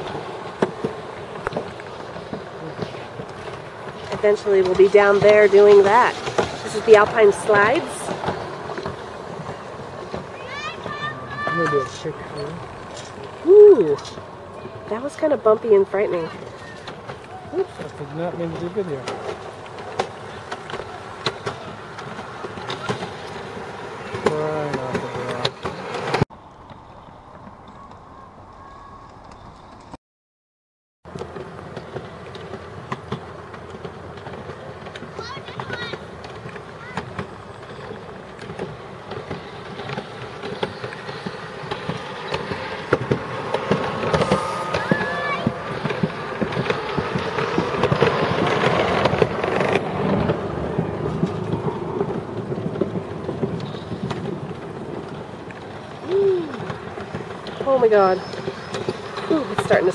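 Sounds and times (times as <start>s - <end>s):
chairlift ride noise with clicks: 0.0s - 30.0s, 31.1s - 59.9s
faint voices: 2.4s - 25.6s, 39.1s - 53.1s, 55.9s - 58.5s.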